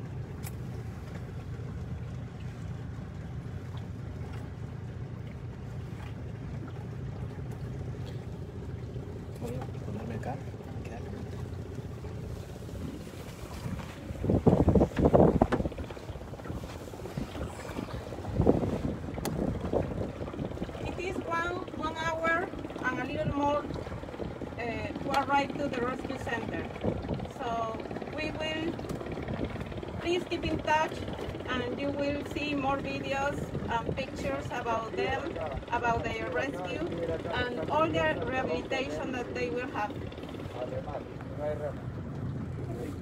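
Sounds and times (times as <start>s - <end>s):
boat motor humming: 0.0s - 43.0s.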